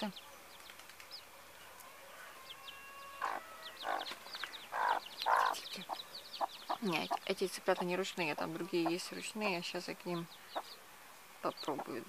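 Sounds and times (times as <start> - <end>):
chicks peeping: 2.4 - 10.8, 11.4 - 12.0
hen clucking: 3.1 - 9.3, 11.5 - 12.0.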